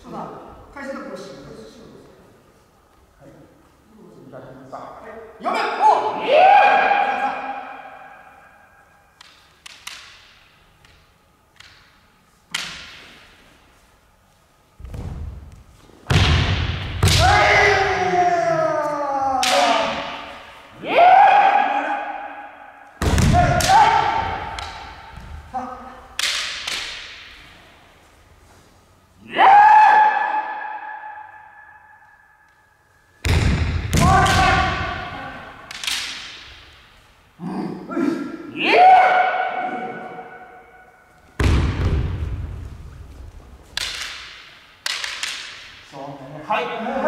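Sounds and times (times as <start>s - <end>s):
bamboo sword strikes: 26.2s - 27.3s.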